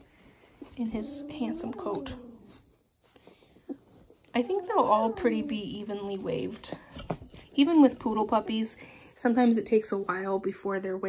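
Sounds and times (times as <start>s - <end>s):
faint rustling: 0.0s - 10.3s
woman speaking: 0.7s - 2.4s, 4.3s - 11.0s.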